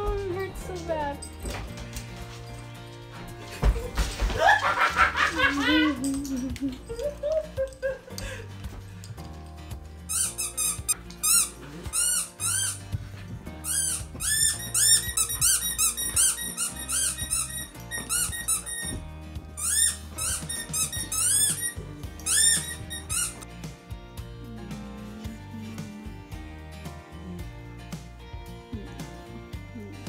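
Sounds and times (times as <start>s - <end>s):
squeaky dog toy squeaking: 10.1s - 12.9s, 13.6s - 19.0s, 19.6s - 23.4s.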